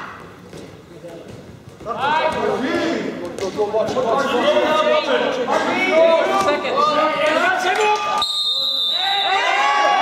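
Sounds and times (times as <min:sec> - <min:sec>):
high-pitched whistle blast: 0:08.2 - 0:09.4.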